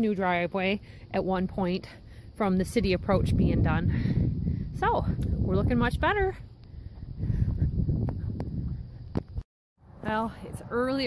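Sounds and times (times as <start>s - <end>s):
wind rumble on microphone: 2.6s - 11.0s.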